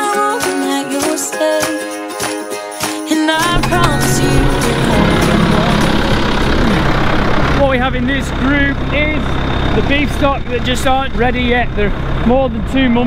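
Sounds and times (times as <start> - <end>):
background music: 0.0 - 8.2
tractor engine idling: 3.4 - 13.0
voices: 3.4 - 13.0.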